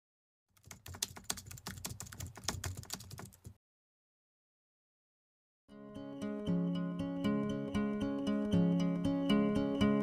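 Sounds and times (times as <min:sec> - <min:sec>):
keystroke clicks on keyboard: 0:00.6 - 0:03.6.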